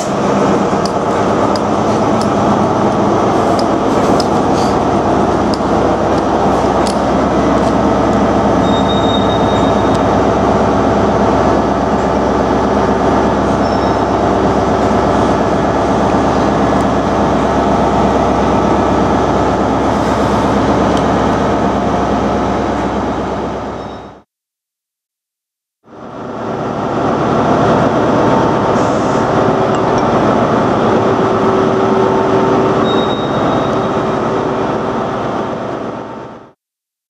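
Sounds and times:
stationary train droning: 0.0s - 24.2s, 25.9s - 36.6s.

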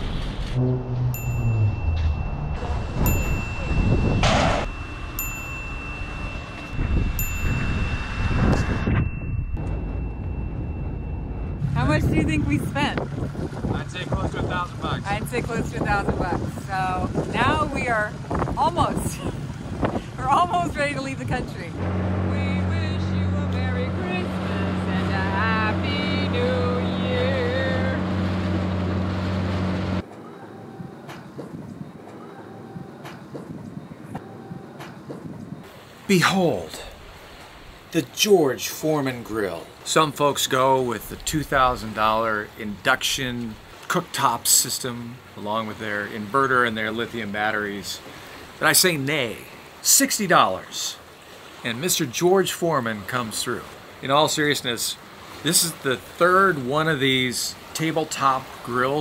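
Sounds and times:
boat motor running: 0.0s - 35.6s
wind: 0.0s - 59.0s
short bright chime: 1.2s - 11.5s.

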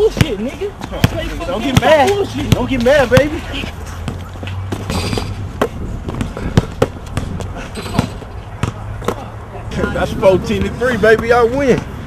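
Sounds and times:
basketball bouncing on concrete: 0.0s - 3.4s, 4.0s - 9.3s, 10.5s - 12.0s.

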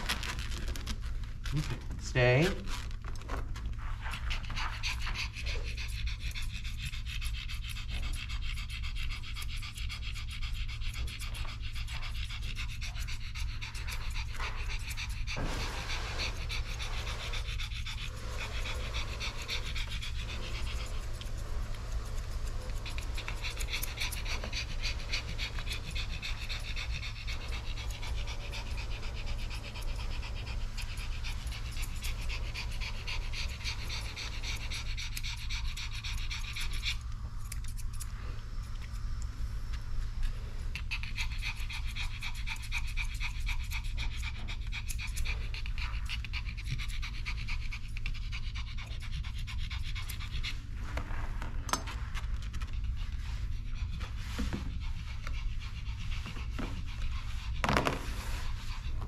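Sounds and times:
dog panting: 0.0s - 59.0s
steady low hum: 0.0s - 59.0s.

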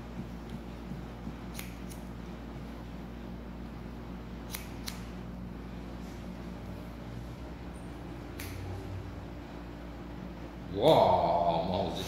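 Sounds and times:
steady low hum: 0.0s - 12.0s
scissors snipping hair: 1.5s - 2.1s, 4.4s - 5.2s, 8.3s - 8.7s.

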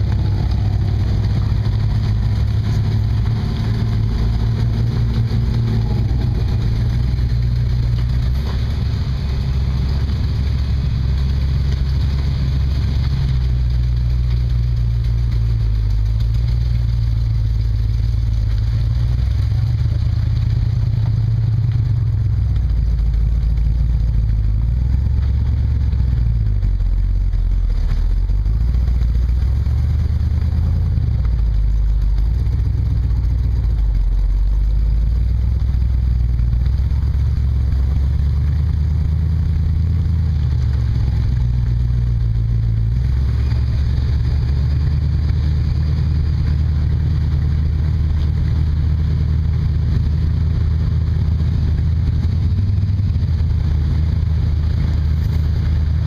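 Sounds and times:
truck engine running: 0.0s - 56.0s.

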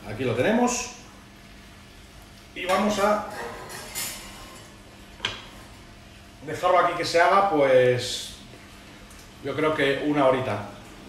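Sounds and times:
dish clinking on metal rack: 2.7s - 4.7s.

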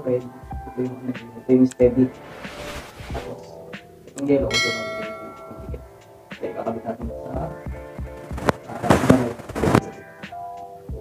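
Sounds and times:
bright multi-tone bell chime: 4.5s - 5.9s.

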